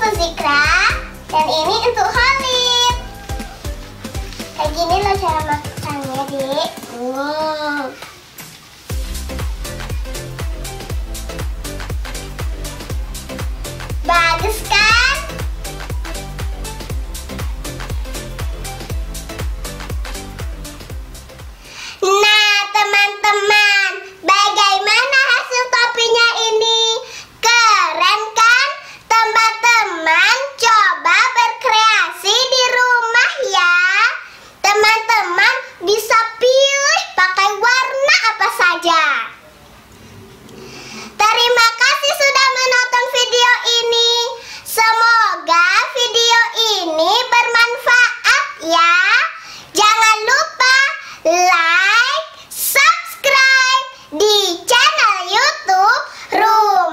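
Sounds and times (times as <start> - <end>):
girl singing high notes: 0.0 - 3.7, 4.3 - 8.1, 14.0 - 16.6, 22.0 - 25.1
dance music with bass beat: 0.1 - 7.0, 8.9 - 21.6.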